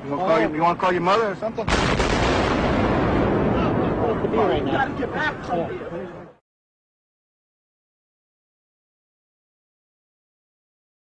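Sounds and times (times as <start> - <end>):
building collapse roar: 1.7 - 5.4.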